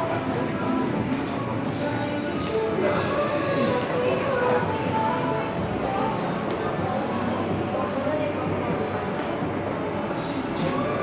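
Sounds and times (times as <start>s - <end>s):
faint music: 0.0s - 11.0s
indistinct voices: 0.0s - 11.0s.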